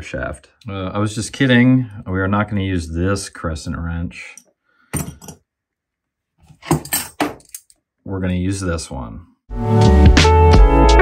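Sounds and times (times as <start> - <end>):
metal wrenches clinking: 6.6 - 7.8.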